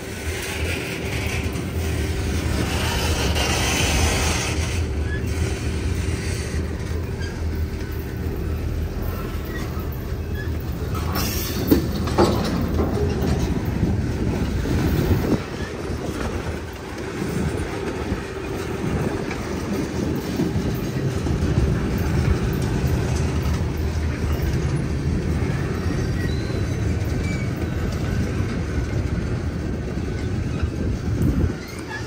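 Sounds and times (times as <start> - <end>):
freight train wheels rumbling: 0.0 - 32.0.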